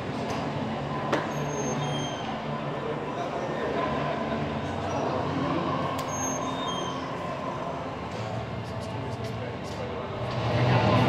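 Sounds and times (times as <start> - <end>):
crowd hubbub and low rumble: 0.0 - 11.0.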